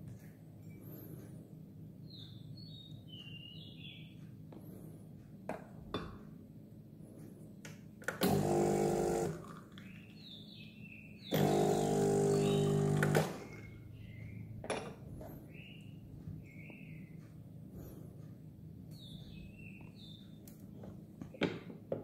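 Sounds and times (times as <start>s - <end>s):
espresso machine pump buzzing: 8.2s - 9.5s, 11.3s - 13.5s.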